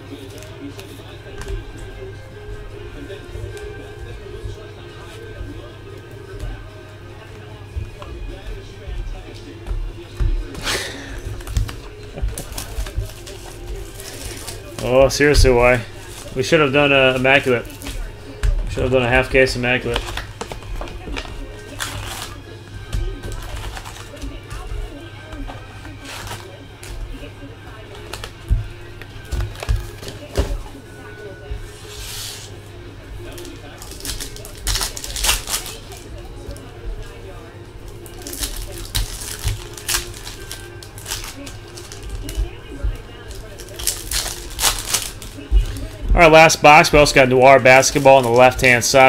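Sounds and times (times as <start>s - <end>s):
faint background music: 0.0s - 49.0s
foil wrappers tearing and crinkling: 10.4s - 28.4s, 33.2s - 36.7s, 37.9s - 49.0s
cards shuffled: 25.4s - 27.0s.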